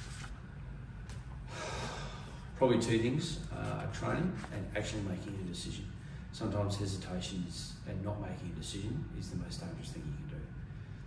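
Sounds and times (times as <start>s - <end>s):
low room hum: 0.0s - 11.0s
man breathing in: 1.4s - 2.6s.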